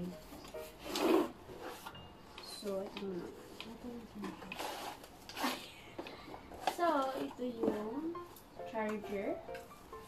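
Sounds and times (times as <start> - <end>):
packaging rustling and scraping: 0.3 - 7.8.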